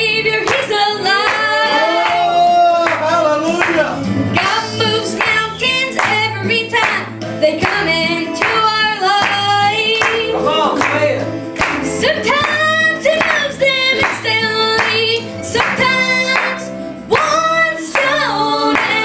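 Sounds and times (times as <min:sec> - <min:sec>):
gospel singing with instruments: 0:00.0 - 0:19.0
hand clapping: 0:00.4 - 0:19.0.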